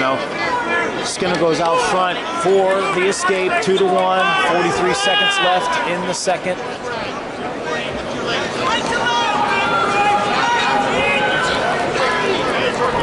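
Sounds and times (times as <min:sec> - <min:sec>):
crowd shouting and chattering: 0:00.0 - 0:13.0.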